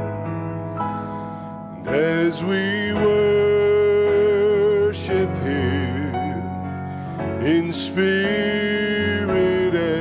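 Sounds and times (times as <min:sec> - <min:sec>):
instrumental accompaniment: 0:00.0 - 0:10.0
man singing into a microphone: 0:01.8 - 0:10.0.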